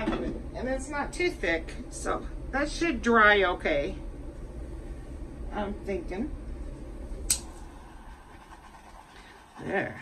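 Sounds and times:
torch igniter click: 7.2 - 7.6.

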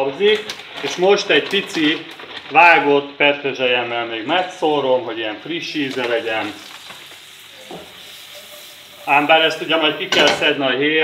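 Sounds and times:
shrimp sizzling in a pan: 5.4 - 10.7.

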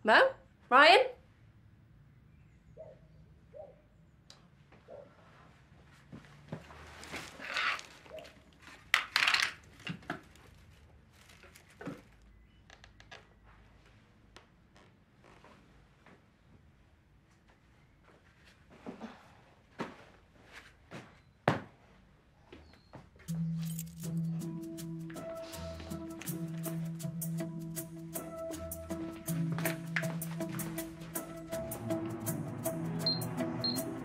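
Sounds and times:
twigs rustling and clattering: 7.0 - 12.3.

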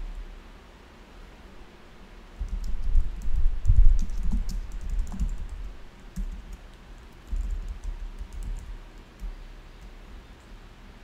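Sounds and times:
computer keyboard typing: 2.4 - 10.5.

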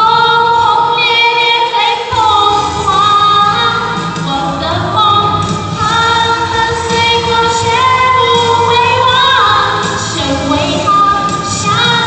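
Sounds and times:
backing music: 0.0 - 12.0
woman singing into microphone: 0.0 - 12.0.

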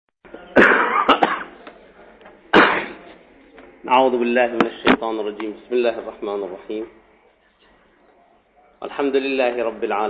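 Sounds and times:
person coughing: 0.6 - 1.6, 2.5 - 3.0.

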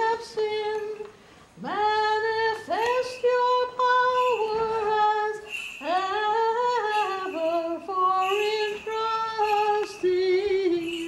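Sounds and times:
woman singing a hymn: 0.0 - 11.0.

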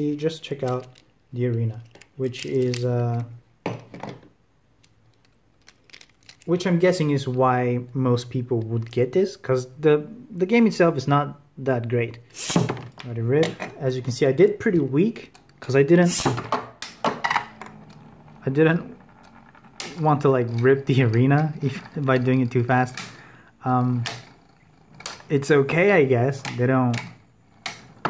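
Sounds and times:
person speaking: 0.0 - 3.5, 5.7 - 16.6, 18.3 - 19.1, 19.8 - 24.2, 25.1 - 27.2.

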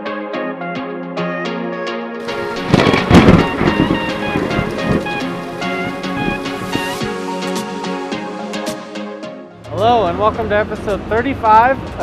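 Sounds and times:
electronic intro music: 0.2 - 10.1
thunderclap: 2.2 - 7.2
rain: 2.2 - 7.5.

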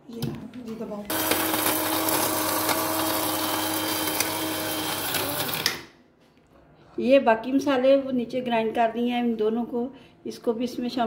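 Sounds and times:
mixer grinder grinding spices: 1.1 - 5.8.

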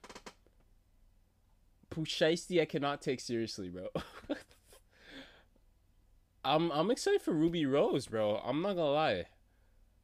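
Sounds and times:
man speaking: 1.9 - 4.0, 6.4 - 9.4.

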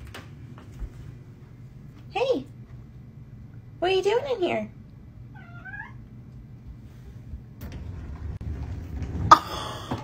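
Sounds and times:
cat meowing: 5.3 - 6.1.

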